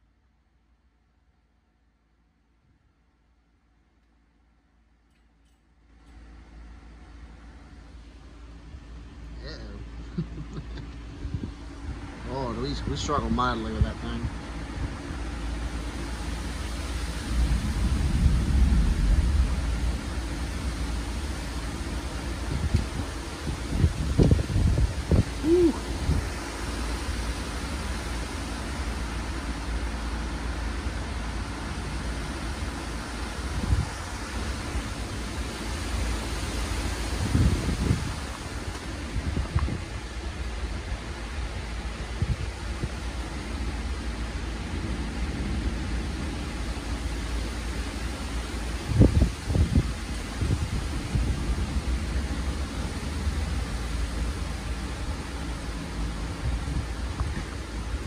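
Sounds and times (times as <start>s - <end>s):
wind rushing through leaves: 5.8s - 58.0s
wind gusts hitting microphone: 8.1s - 58.0s.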